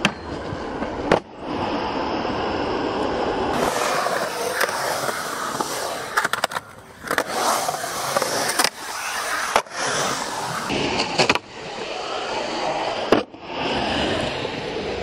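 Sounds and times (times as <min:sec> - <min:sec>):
skateboard wheels rolling on concrete: 0:00.0 - 0:15.0.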